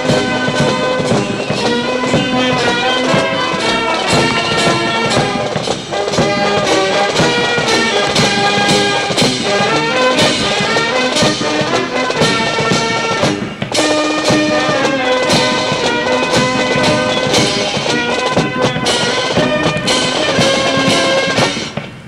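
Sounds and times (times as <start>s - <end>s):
drum strikes: 0.0s - 22.0s
military brass band playing: 0.0s - 22.0s.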